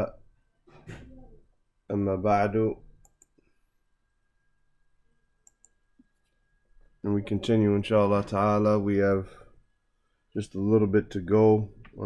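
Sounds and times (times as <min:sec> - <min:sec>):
faint clicks: 0:03.0 - 0:03.5, 0:05.4 - 0:06.4.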